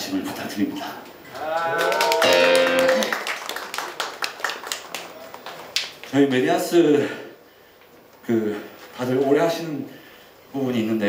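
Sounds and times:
sharp claps: 1.3 - 6.2
electric guitar chord: 2.2 - 3.2.

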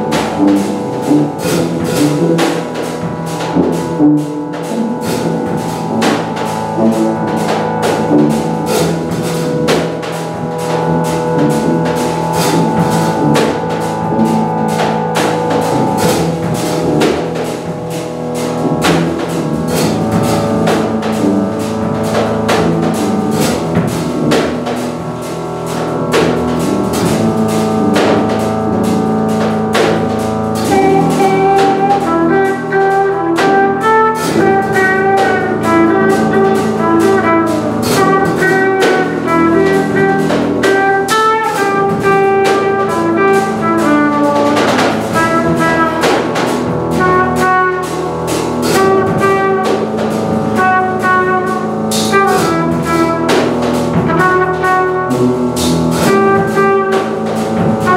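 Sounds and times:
drum kit beat: 0.0 - 57.9
trumpet melody: 0.0 - 57.9
tuba: 0.0 - 57.9.

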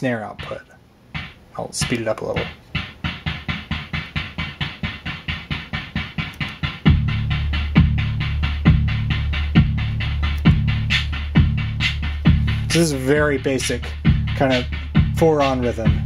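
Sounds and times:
analog kick drum thuds: 0.0 - 16.0
digital hi-hat ticking: 0.0 - 16.0.

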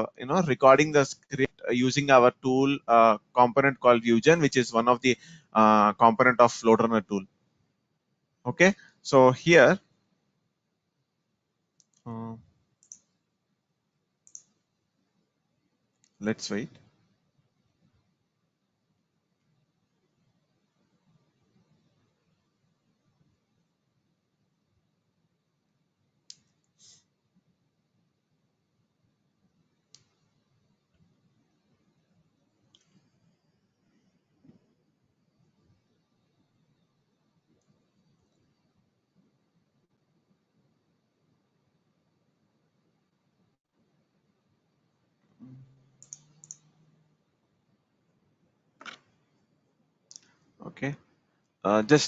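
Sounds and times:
computer mouse clicks: 12.8 - 13.1, 14.2 - 14.6, 46.0 - 46.8, 48.8 - 49.1.

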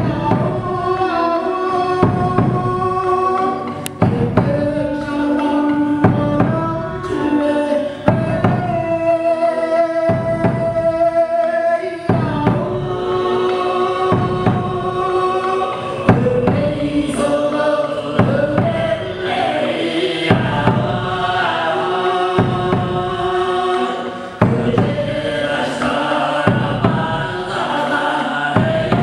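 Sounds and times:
hand drum struck: 0.0 - 7.4, 8.0 - 9.2, 10.1 - 11.2, 12.1 - 19.4, 22.4 - 23.5, 24.4 - 27.9, 28.5 - 29.0
bowed fiddles: 0.0 - 28.5
low throat-singing: 0.0 - 29.0.

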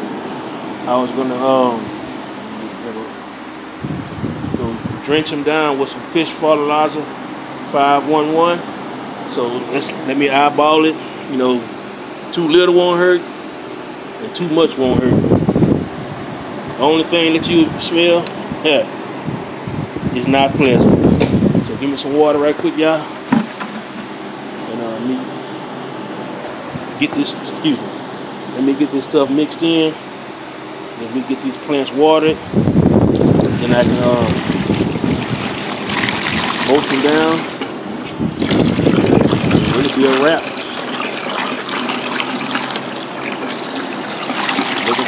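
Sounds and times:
short knock: 23.3 - 24.1
hose water running into bucket: 33.1 - 37.8, 38.4 - 45.0.

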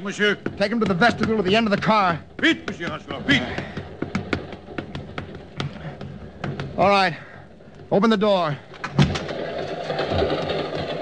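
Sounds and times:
rapid sharp taps: 0.0 - 6.8.

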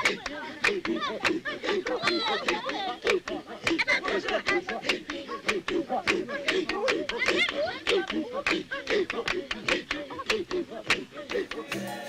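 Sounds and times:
sharp hand claps: 0.0 - 11.8
voices chattering and laughing: 0.0 - 11.8.

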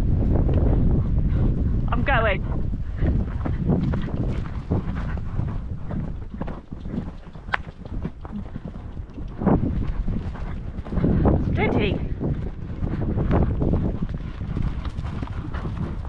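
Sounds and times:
wind rumbling on microphone: 0.0 - 16.0
horse hoofbeats on grass: 0.1 - 16.0.

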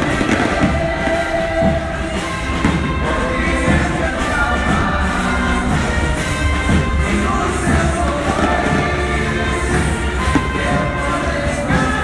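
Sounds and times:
loud procession music: 0.0 - 12.0.

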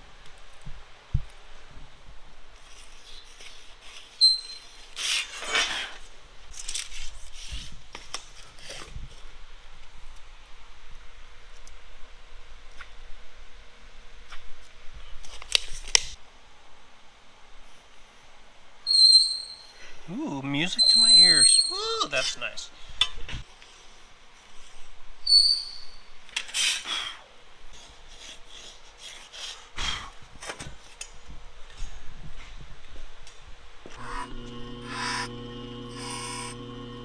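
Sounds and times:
short high squeak: 4.2 - 4.8, 20.8 - 21.8.

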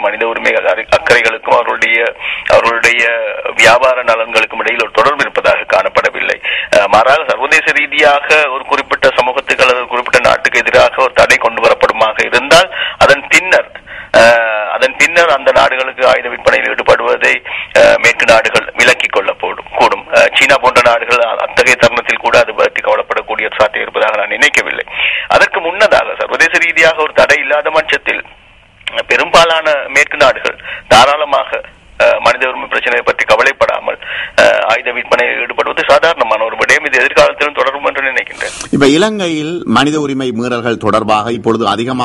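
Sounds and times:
man talking over telephone: 0.0 - 42.0.

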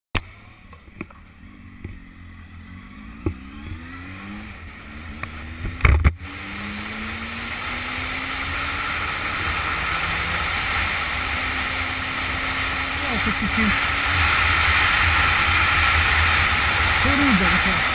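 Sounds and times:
motorcycle engine revving: 0.2 - 17.9
wind and road rush: 0.2 - 17.9.

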